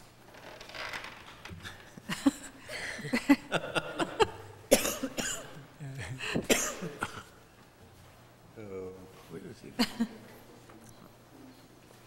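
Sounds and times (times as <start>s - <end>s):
coughing: 1.6s - 7.4s
people laughing: 2.0s - 4.7s.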